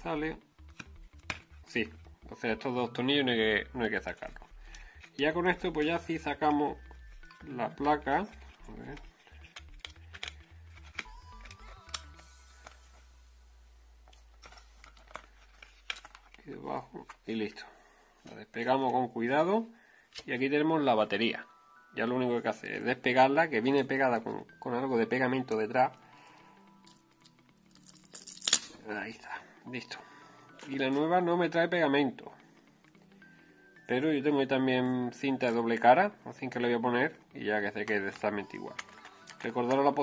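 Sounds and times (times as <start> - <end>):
fingers clicking and tapping plastic: 0.6 - 2.0, 4.2 - 12.2.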